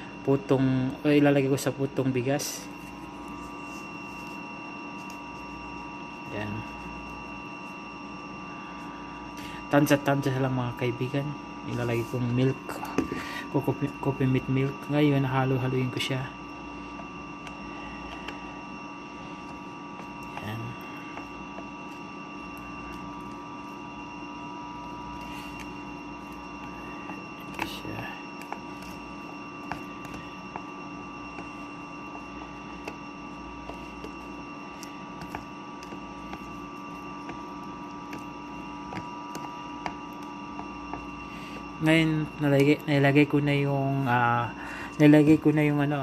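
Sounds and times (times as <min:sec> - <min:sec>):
electrical hum: 0:00.0 - 0:46.0.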